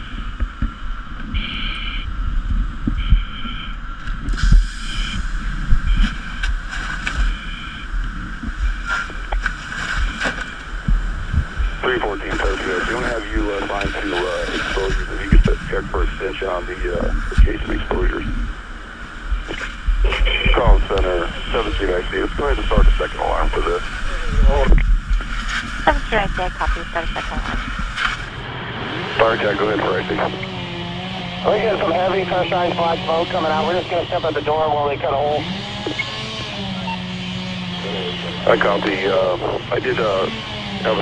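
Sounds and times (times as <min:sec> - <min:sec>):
microphone handling noise: 0:00.0 - 0:18.6, 0:19.3 - 0:28.4
wind on microphone: 0:00.0 - 0:28.4
fire rumbling: 0:00.0 - 0:41.0
man talking over two-way radio: 0:11.8 - 0:18.4, 0:19.5 - 0:24.8, 0:29.2 - 0:30.6, 0:31.4 - 0:36.0, 0:37.8 - 0:41.0.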